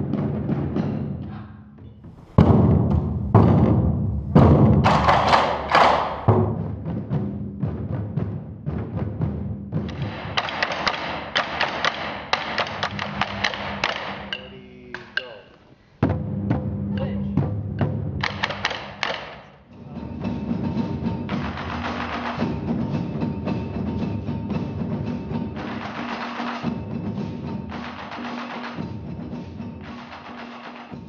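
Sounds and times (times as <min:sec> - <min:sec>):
taiko drum hits: 0:02.0 - 0:14.5, 0:16.0 - 0:19.4, 0:20.0 - 0:31.0.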